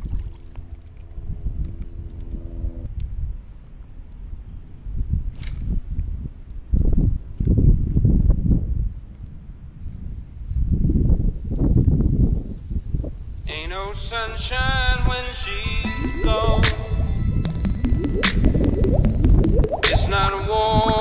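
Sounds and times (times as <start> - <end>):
wind buffeting microphone: 4.9 - 13.5.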